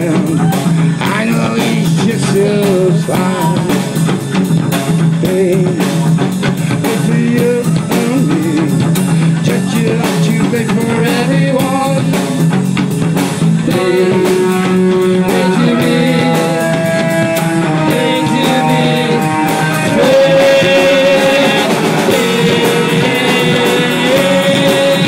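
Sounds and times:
drum kit beat: 0.0s - 25.0s
electric guitars: 0.0s - 25.0s
woman singing: 13.7s - 25.0s.

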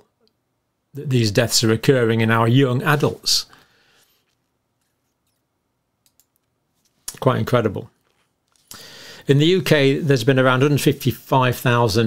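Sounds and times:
faint clicks: 6.0s - 6.5s.

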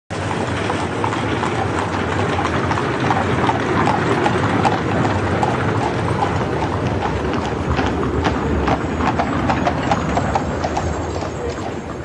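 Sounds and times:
crowd footsteps on hard street: 0.1s - 12.0s
steady background noise: 0.1s - 12.0s.

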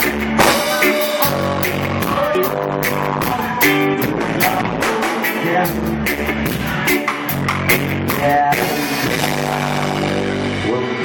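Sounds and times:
live rock band held chord: 0.0s - 11.0s
guitar note bending upward: 0.4s - 3.3s.

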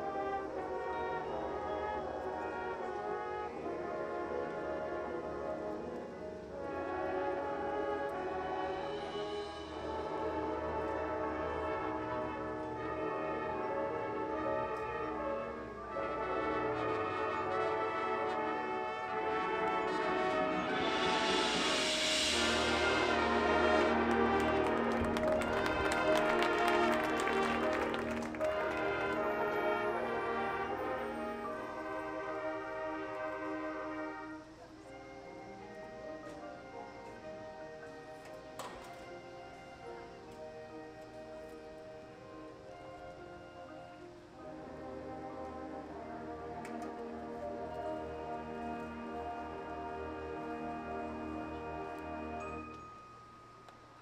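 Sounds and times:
marching band playing: 0.0s - 52.7s.

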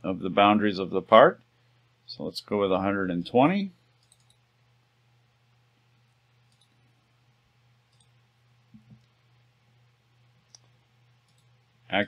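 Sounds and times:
low electrical hum: 0.0s - 12.0s
computer mouse clicks: 4.0s - 4.4s, 6.5s - 6.8s, 7.9s - 9.2s, 10.4s - 11.6s.

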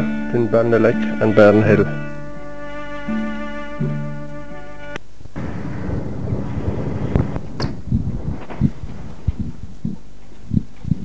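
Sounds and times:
wind rumbling on microphone: 5.2s - 11.0s.

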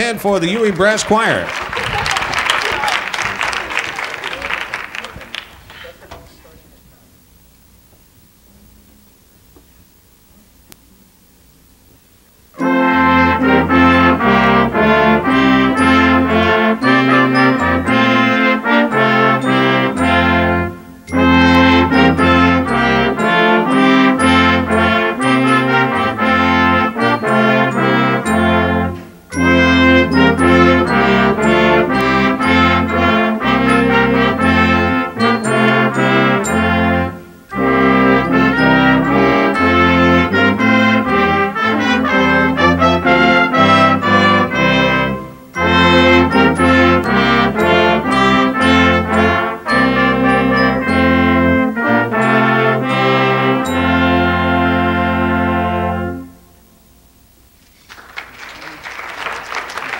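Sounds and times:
brass ensemble playing: 0.0s - 5.4s, 12.5s - 57.0s.

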